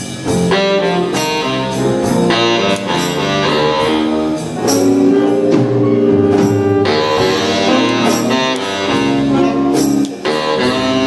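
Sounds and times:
jazz band playing: 0.0s - 11.0s.

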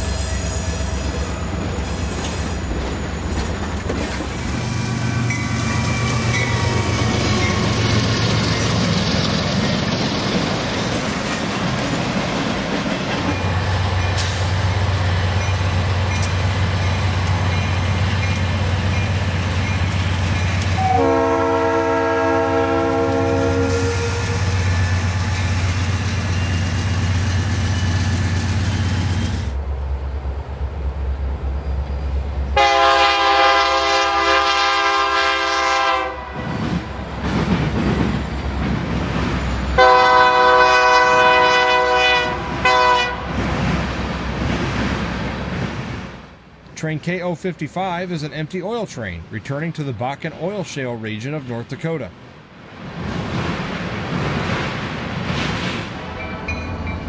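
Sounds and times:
locomotive engine rumble: 0.0s - 35.5s
locomotive horn blasts: 20.8s - 24.6s, 32.6s - 36.6s, 39.8s - 43.3s.

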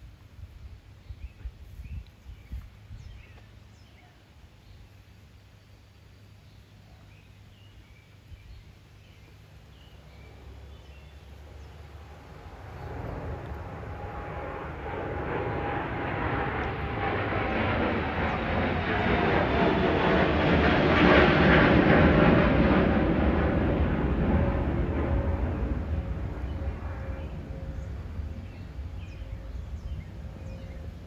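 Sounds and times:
distant engine rumble passing: 6.0s - 31.0s.

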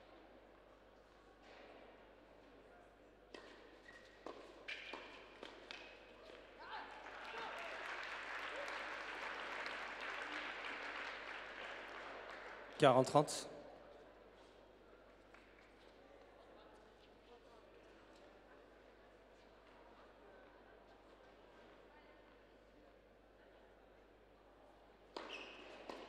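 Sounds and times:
audience applause: 7.0s - 13.3s.

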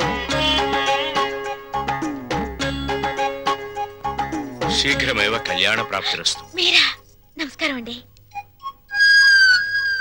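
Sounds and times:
high whistle-like note: 8.9s - 10.0s.

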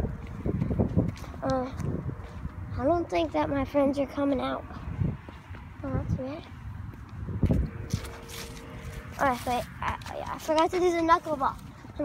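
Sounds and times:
wind on phone microphone: 0.0s - 10.2s.

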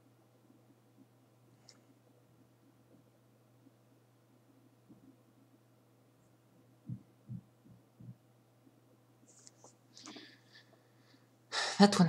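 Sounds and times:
low electrical hum: 0.0s - 12.0s
soft low thumps: 6.8s - 8.4s.

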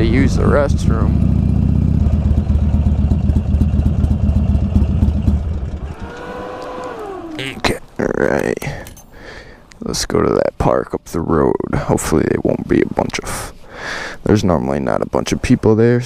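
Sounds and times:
motorcycle engine idling: 0.0s - 7.5s
falling whine: 5.1s - 7.8s.

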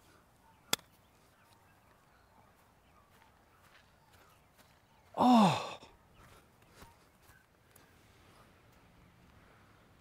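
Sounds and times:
person groaning sigh: 5.2s - 5.9s.

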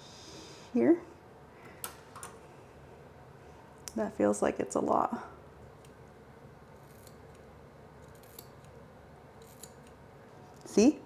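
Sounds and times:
scissors snipping hair: 6.8s - 8.8s, 9.4s - 10.0s.

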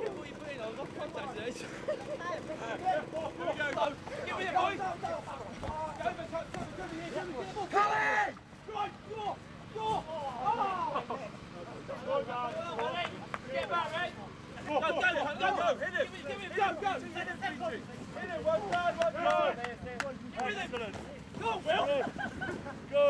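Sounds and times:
men shouting and calling out: 0.0s - 23.0s
loud yell: 7.7s - 11.0s.

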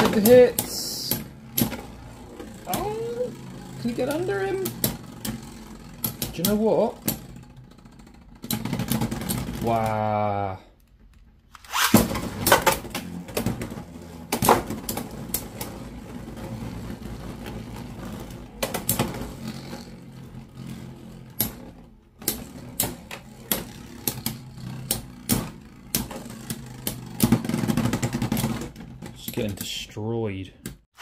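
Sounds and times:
spinning tops whirring: 0.0s - 10.3s, 11.6s - 29.4s.

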